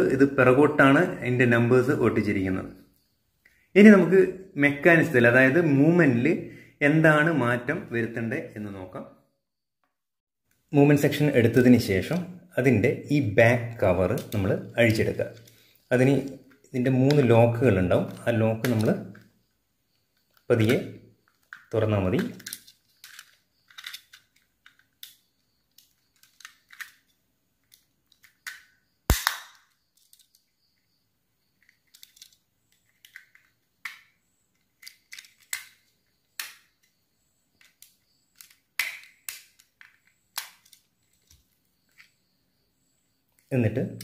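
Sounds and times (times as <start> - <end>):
plastic clicks snaps and scrapes: 20.3 - 30.4, 31.6 - 37.0, 37.6 - 42.2
loud sharp snap: 29.1 - 29.8.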